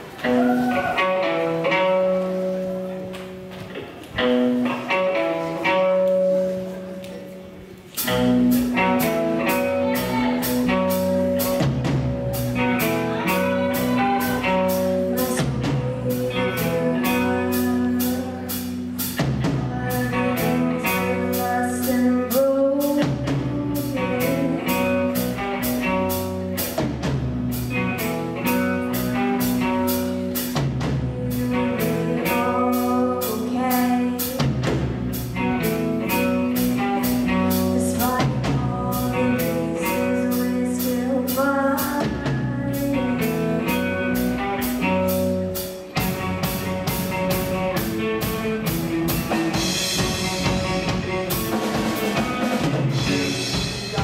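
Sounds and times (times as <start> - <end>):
rock band playing: 0.0 - 54.0
girl singing: 12.6 - 25.7, 30.9 - 34.7, 36.1 - 44.7.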